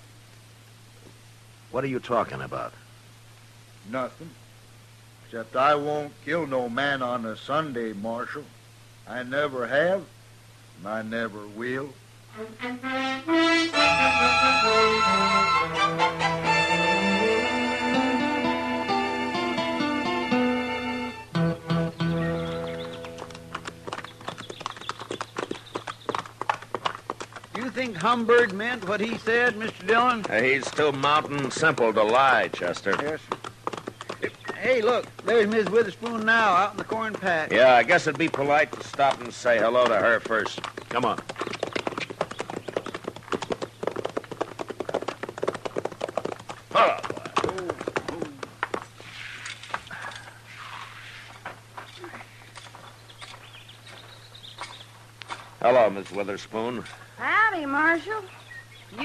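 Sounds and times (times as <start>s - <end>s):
faint outdoor background: 0.0s - 59.0s
guitar music held notes: 12.4s - 23.6s
horse hooves clopping: 21.6s - 57.0s.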